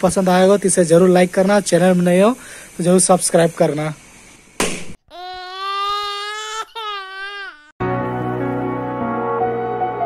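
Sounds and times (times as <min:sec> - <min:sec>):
high-pitched wailing cry: 0:05.1 - 0:07.7.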